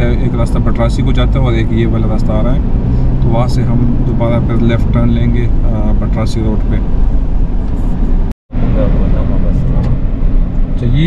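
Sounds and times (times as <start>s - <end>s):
road and engine rumble in vehicle: 0.0s - 11.0s.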